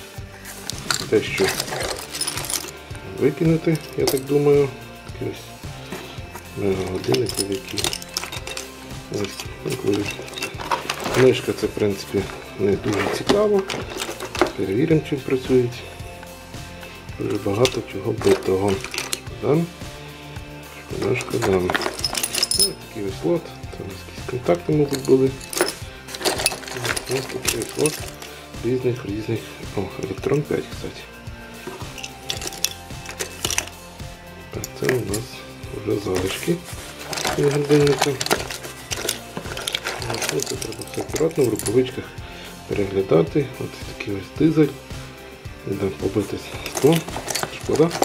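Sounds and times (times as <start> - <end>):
metal parts clinking and rattling: 0.4 - 4.8, 5.8 - 16.4, 17.2 - 19.8, 20.8 - 29.2, 29.8 - 30.7, 31.5 - 42.1, 45.8 - 48.0.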